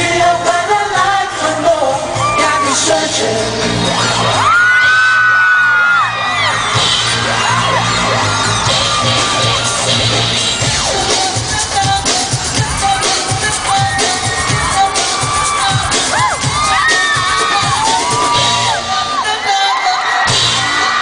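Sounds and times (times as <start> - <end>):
live pop song over sound system: 0.0 - 21.0
high cries from audience: 3.8 - 11.1, 12.6 - 21.0.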